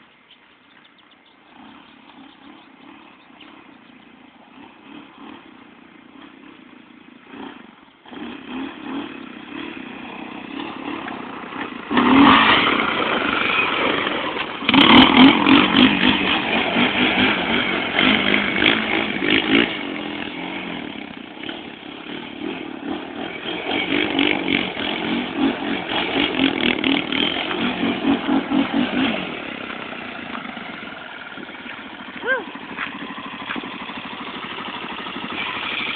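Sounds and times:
atv engine revving: 0.6 - 35.9.

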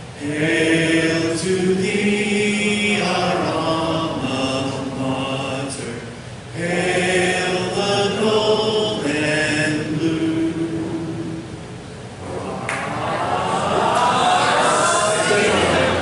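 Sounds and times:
crowd singing together: 0.0 - 11.6, 12.5 - 16.0.

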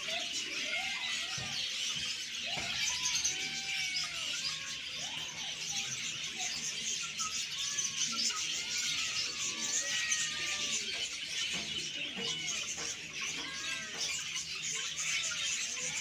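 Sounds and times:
small birds chirping: 0.0 - 16.0
kittens meowing: 2.4 - 16.0.

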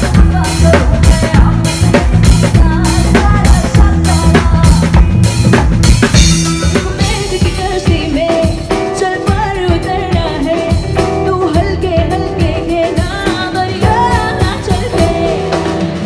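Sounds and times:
woman singing: 0.0 - 5.8, 6.5 - 16.0
drum kit: 0.0 - 16.0.

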